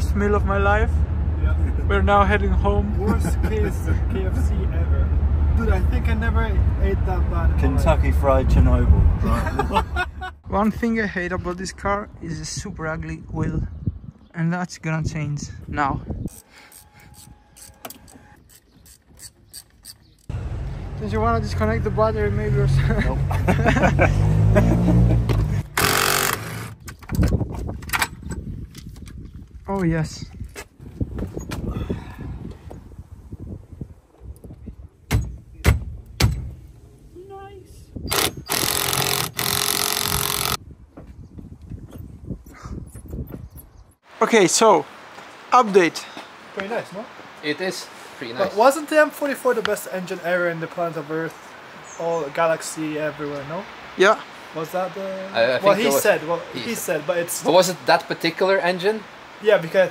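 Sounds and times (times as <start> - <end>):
sharp knocks: 35.1 - 36.6.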